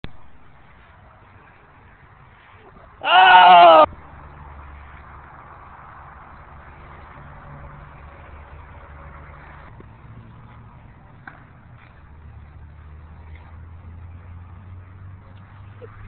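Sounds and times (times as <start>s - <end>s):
person cheering shout: 3.0s - 3.9s.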